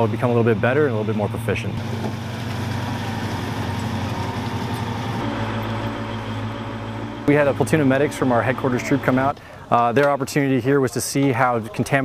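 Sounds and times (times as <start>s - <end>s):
diesel engine idling: 0.0s - 11.5s.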